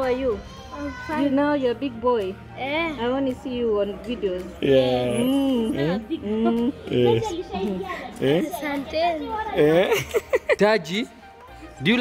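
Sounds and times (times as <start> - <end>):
children talking: 0.0 - 3.6, 5.1 - 9.9.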